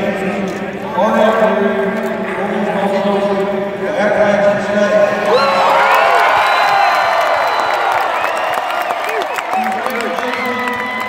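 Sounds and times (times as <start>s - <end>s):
crowd cheering and whooping: 5.2s - 11.0s
people clapping: 5.3s - 11.0s.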